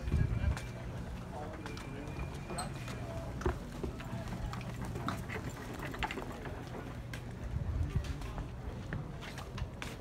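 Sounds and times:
footsteps on concrete: 2.8 - 5.6, 6.3 - 10.0
steady low rumble: 6.9 - 9.8.

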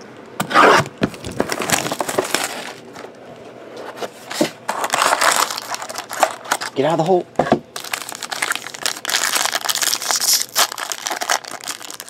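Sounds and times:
shrink-wrap crinkling and tearing: 1.1 - 3.0, 4.7 - 7.0, 7.8 - 12.0.

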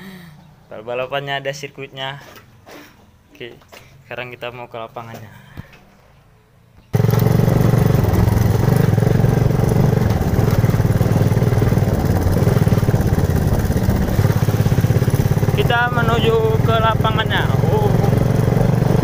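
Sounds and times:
motorcycle engine running: 6.9 - 19.0.

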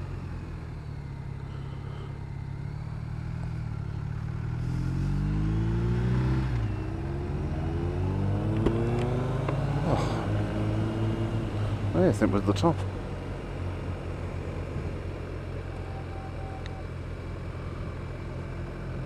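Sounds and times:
motorcycle engine accelerating: 0.0 - 19.0.

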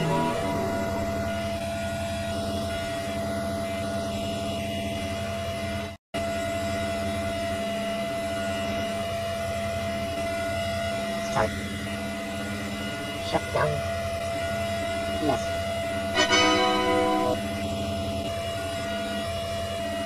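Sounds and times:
electronic drone: 0.0 - 5.9, 6.8 - 20.0.

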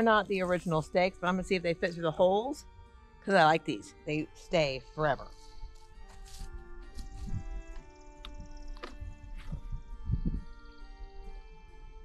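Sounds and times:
music with sustained notes: 0.0 - 12.0
dull low thumps: 6.4 - 10.6.

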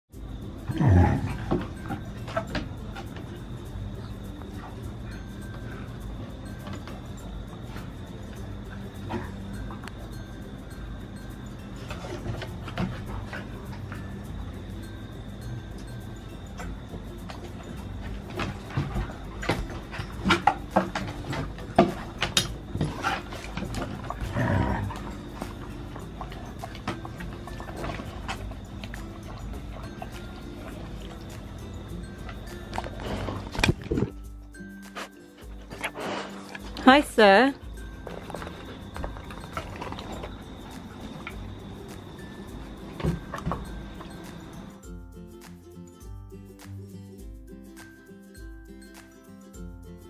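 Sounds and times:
dog growling: 0.6 - 2.2, 22.8 - 27.9.

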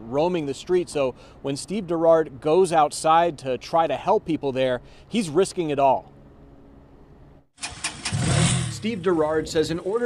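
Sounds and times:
faint background hum: 0.0 - 7.5
motorcycle engine running: 7.6 - 9.9.

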